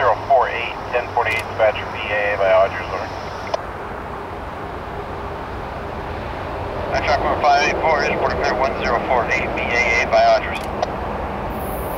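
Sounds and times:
diesel locomotives rumbling: 0.0s - 11.9s
radio transmission click: 1.0s - 2.1s, 2.8s - 3.6s, 9.6s - 10.9s.

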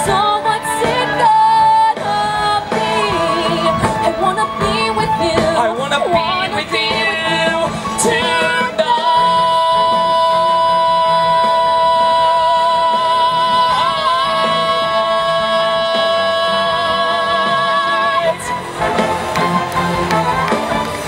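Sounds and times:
man and woman singing duet: 0.0s - 19.2s.

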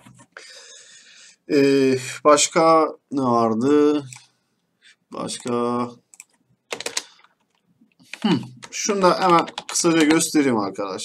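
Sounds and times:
computer keyboard key clicks: 6.2s - 10.3s.

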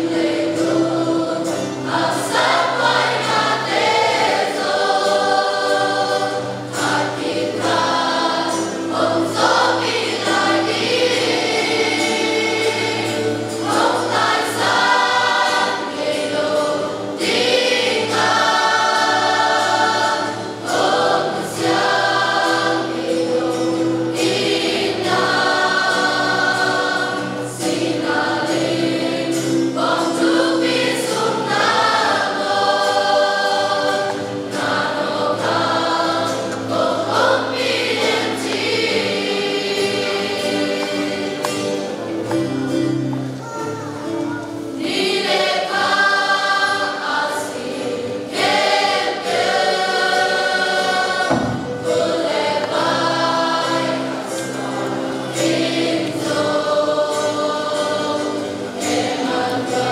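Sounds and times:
choir of women singing a hymn: 0.0s - 42.9s, 44.1s - 59.9s
instrumental accompaniment: 0.0s - 59.9s.

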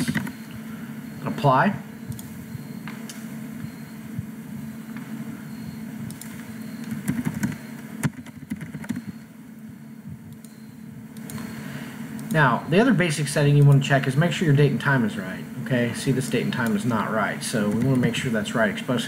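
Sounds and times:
low hum of running equipment: 0.0s - 19.0s.

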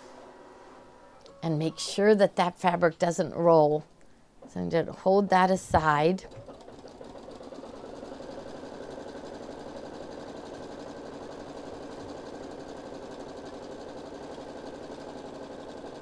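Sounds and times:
embroidery machine stitching: 6.0s - 16.0s.

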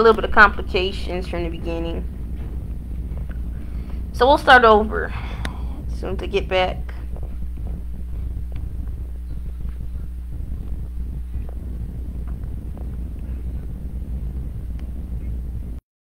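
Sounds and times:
steady low hum: 0.0s - 15.8s.

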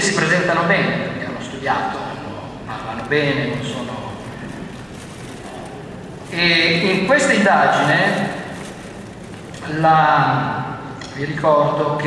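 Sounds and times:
large hall hiss and hum: 0.0s - 12.0s.

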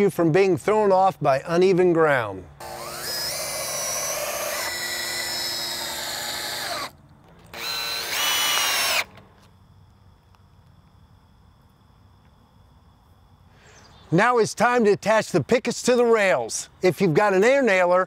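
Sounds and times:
cordless drill driving screw into wood: 2.6s - 9.2s.

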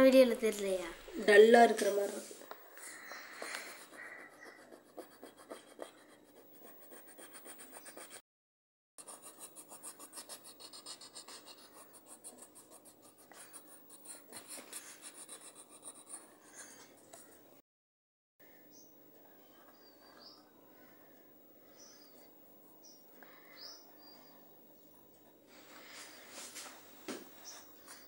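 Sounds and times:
pencil scratching on paper: 3.2s - 8.2s, 9.0s - 17.3s.

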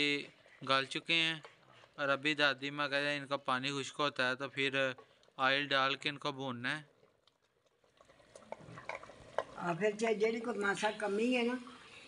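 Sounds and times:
wooden spoon scraping clay pot: 7.9s - 9.6s.

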